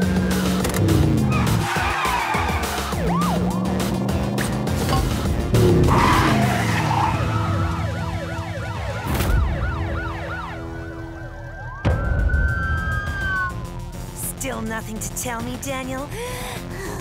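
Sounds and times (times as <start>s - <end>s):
car engine revving: 0.0s - 9.0s
dramatic background music: 0.0s - 17.0s
cartoon police sirens wailing: 1.3s - 4.2s, 5.8s - 14.2s.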